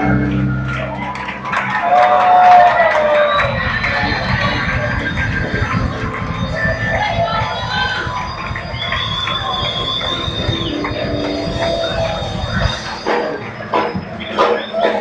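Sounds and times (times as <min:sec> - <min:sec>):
crowd voices: 0:00.0 - 0:15.0
worship music with heavy bass: 0:00.0 - 0:15.0.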